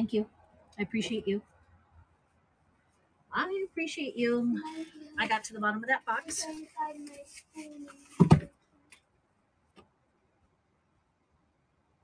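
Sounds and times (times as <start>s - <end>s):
woman's voice: 0.0s - 1.5s, 3.3s - 6.4s.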